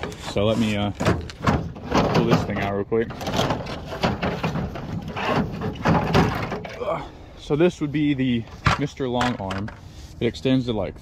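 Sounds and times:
clatter and bumps: 0.0 - 6.8
pole scraping along ladder: 0.0 - 6.8.

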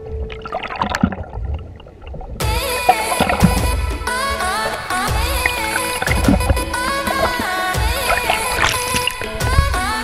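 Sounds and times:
muffled underwater water rush: 0.0 - 10.0
music: 2.4 - 10.0.

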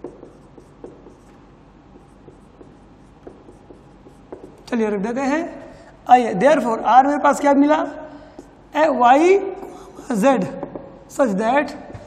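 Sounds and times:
marker tapping on whiteboard: 0.0 - 4.7, 10.6 - 11.0
marker scratching on whiteboard: 0.0 - 5.0.

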